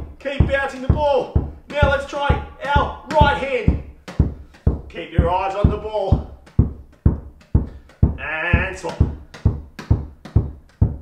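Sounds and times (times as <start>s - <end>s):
rubber ball bouncing on carpet: 0.0s - 11.0s.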